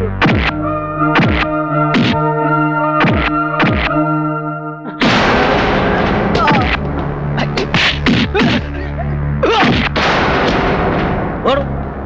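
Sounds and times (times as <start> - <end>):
noisy din: 0.0 - 2.3, 3.0 - 4.1, 4.9 - 12.0
low steady music tone: 0.0 - 9.4
loud hit: 5.0 - 8.7, 9.4 - 12.0.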